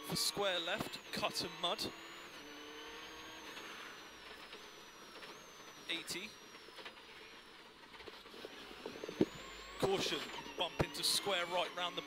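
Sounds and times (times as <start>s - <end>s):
car engine from inside cabin: 0.0s - 12.0s.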